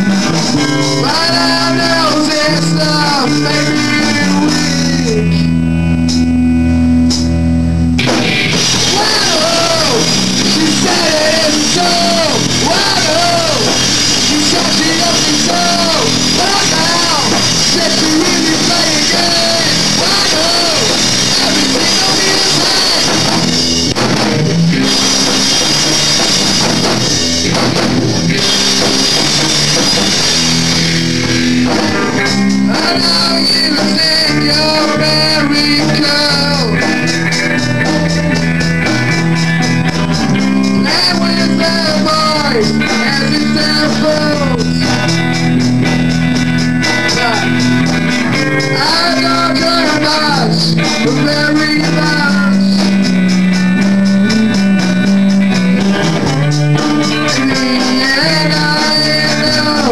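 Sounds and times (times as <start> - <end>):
drum kit beat: 0.0 - 59.9
electric guitar chords: 0.0 - 59.9
punk rock band playing: 0.0 - 59.9.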